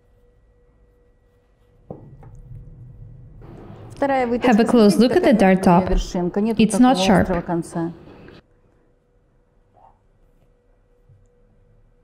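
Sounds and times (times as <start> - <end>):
low steady hum: 0.0 - 8.7.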